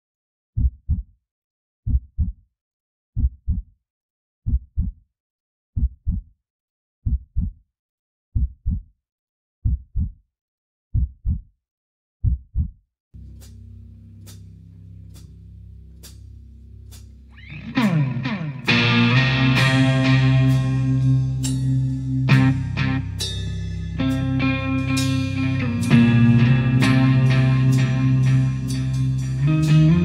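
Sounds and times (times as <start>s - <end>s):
heartbeat double thumps: 0.6s - 1.1s, 1.9s - 2.4s, 3.2s - 3.7s, 4.5s - 5.0s, 5.8s - 6.3s, 7.0s - 7.6s, 8.4s - 8.9s, 9.6s - 10.2s, 10.9s - 11.5s, 12.2s - 12.8s
steady low hum: 13.2s - 30.0s.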